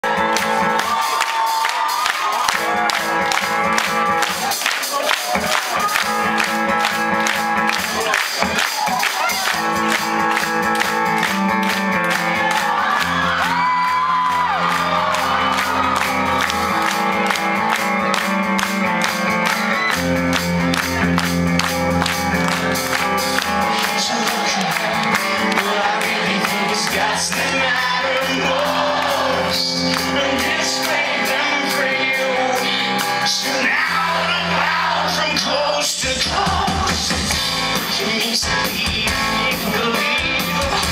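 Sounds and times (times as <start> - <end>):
crowd shouting and cheering: 0.0 - 40.9
rock band playing live: 0.0 - 40.9.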